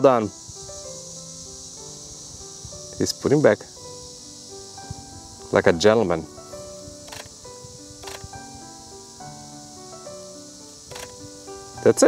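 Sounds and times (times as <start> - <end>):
soft background music: 0.0 - 12.0
faint clicks: 7.0 - 7.4, 8.0 - 8.4, 10.9 - 11.2.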